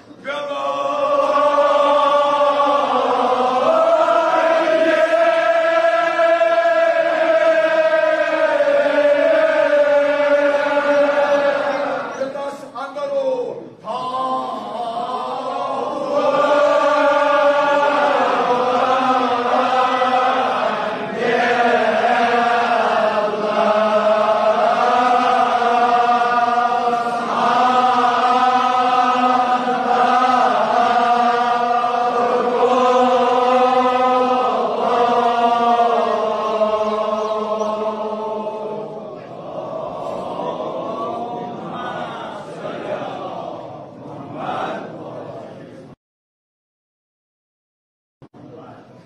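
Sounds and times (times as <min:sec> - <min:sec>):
men chanting: 0:00.0 - 0:12.7, 0:13.7 - 0:45.6.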